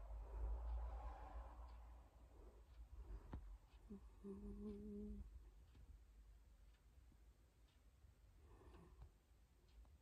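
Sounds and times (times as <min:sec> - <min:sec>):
person humming faintly: 0:03.9 - 0:05.3.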